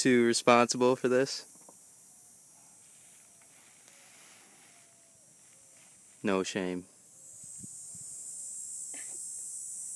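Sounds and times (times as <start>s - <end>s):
high-pitched insect buzz: 1.4s - 9.9s.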